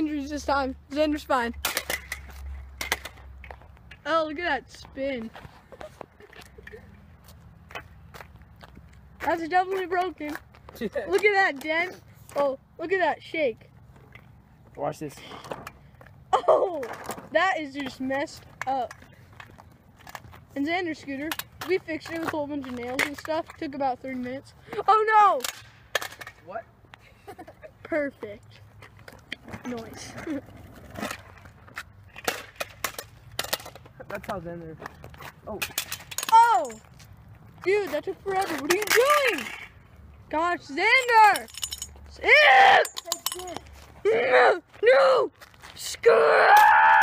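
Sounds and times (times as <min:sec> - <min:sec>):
footsteps on asphalt: 0:02.2 - 0:11.6, 0:17.8 - 0:20.9, 0:33.8 - 0:35.5, 0:43.6 - 0:44.0, 0:44.6 - 0:46.0.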